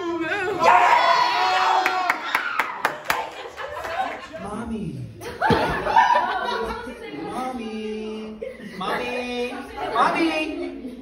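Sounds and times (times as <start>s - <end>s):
people laughing loudly: 2.8s - 4.5s, 5.2s - 7.2s.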